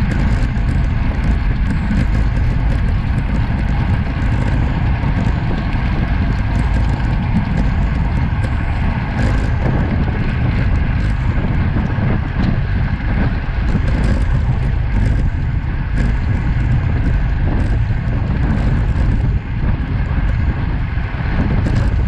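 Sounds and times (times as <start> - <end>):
bike tyres rolling on tarmac: 0.0 - 22.0
wind rush on microphone: 0.0 - 22.0.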